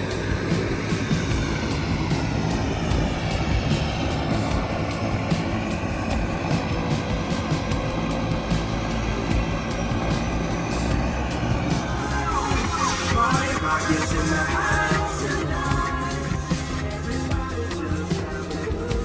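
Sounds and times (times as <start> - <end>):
background music: 0.0 - 19.0
boat engine rumbling: 0.0 - 19.0
wind: 0.0 - 19.0.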